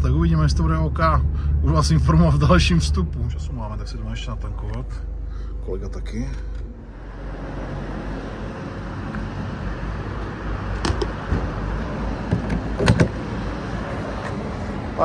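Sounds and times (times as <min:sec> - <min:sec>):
traffic noise: 0:00.0 - 0:15.0
sharp clicks and knocks: 0:10.8 - 0:13.2.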